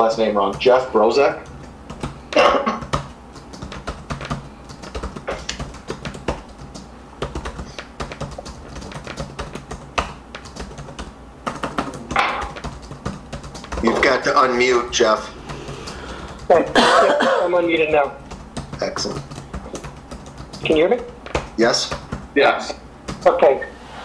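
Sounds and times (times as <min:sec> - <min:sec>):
typing on computer keyboard: 0:00.0 - 0:16.8, 0:17.4 - 0:22.3, 0:23.0 - 0:23.4.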